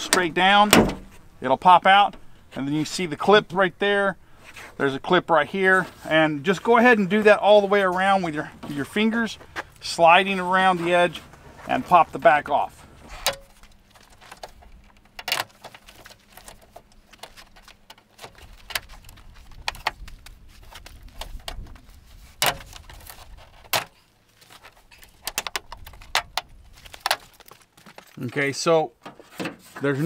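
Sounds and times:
light plastic rattling: 13.1 - 28.2.

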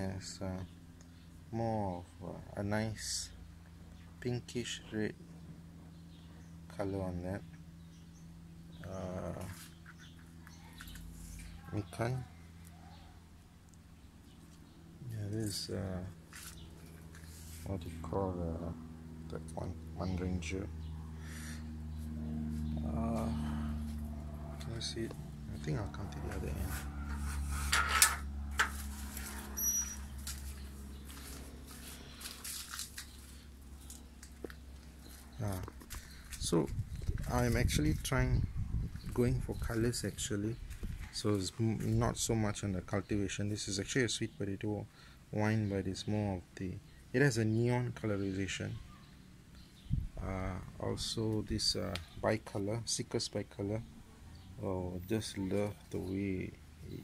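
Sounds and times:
faint low hum: 0.0 - 57.0.

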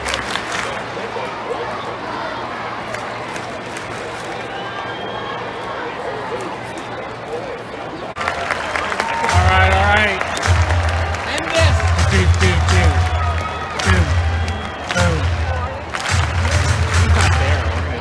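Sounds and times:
crowd murmur: 0.0 - 18.0
stadium sound system audio: 0.0 - 18.0.

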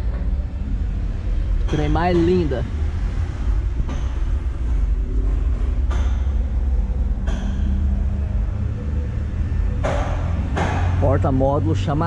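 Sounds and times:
low rumble with hum: 0.0 - 12.0.

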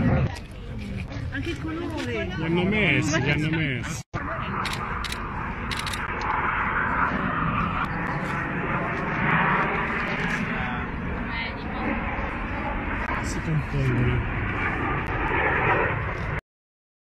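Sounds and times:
distant jet engines rushing: 0.0 - 16.4.

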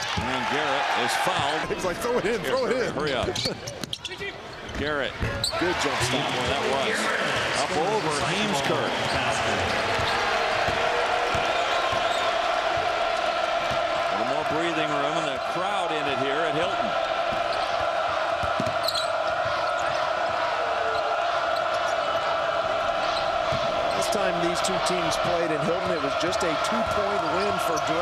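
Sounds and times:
arena crowd murmur: 5.6 - 28.0.

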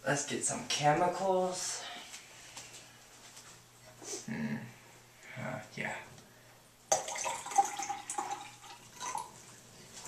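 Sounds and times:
liquid pouring into a glass: 6.9 - 9.6.

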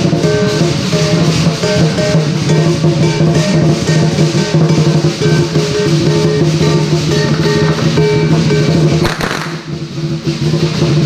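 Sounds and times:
parade band music with drums: 0.0 - 11.0
firecracker crack: 5.4 - 10.7.

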